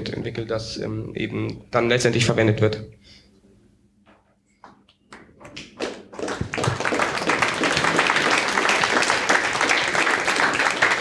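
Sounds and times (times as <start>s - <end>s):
audience applauding: 5.5s - 11.0s.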